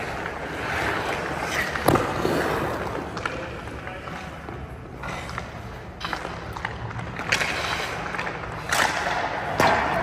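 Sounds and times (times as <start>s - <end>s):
skates scraping on ice: 0.0s - 10.0s.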